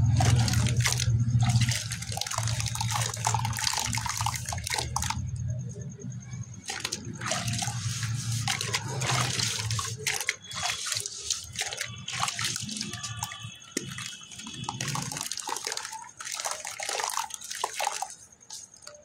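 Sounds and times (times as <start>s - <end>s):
wet clay squelching: 0.0s - 5.3s, 6.5s - 19.0s
water splashing: 0.0s - 5.4s, 6.5s - 19.0s
water dripping: 0.0s - 5.7s, 6.5s - 19.0s.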